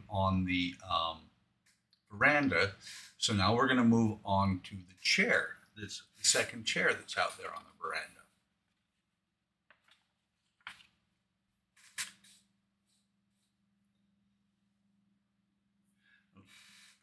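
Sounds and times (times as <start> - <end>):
person speaking: 0.0 - 1.3, 2.1 - 8.4.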